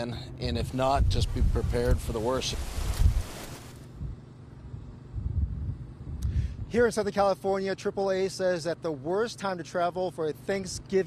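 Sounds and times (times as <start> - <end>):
gusty wind on microphone: 0.5 - 6.8.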